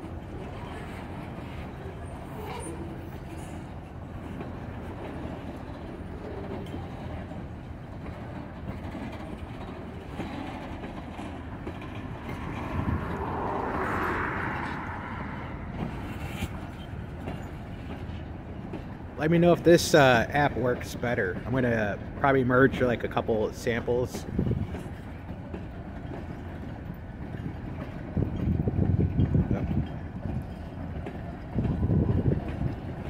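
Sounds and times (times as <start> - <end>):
train wheels rumbling on rail: 0.0 - 33.0.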